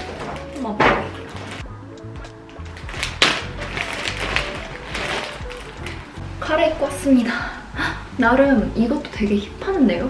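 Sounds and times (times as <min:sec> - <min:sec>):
plastic bag crinkling: 0:00.0 - 0:01.7, 0:02.3 - 0:06.3
background music with low beat: 0:00.0 - 0:10.0.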